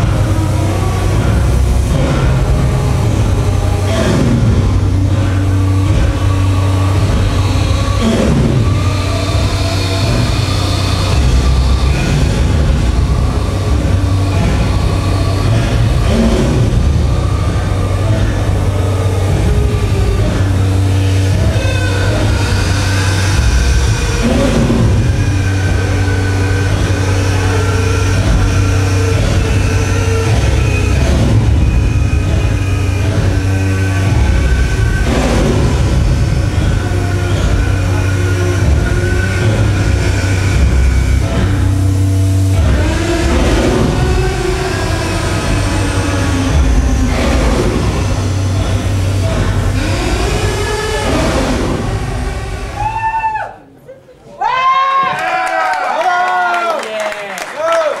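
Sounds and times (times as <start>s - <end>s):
heavy low hum: 0.0s - 53.9s
experimental noise music: 0.0s - 58.0s.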